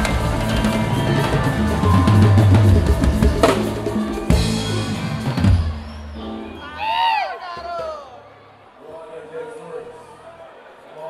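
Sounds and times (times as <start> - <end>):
drum and cymbal hits: 0.0 - 6.1.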